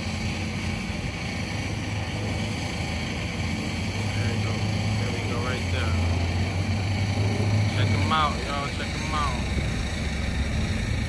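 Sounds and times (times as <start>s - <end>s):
diesel engine running: 0.0s - 11.0s.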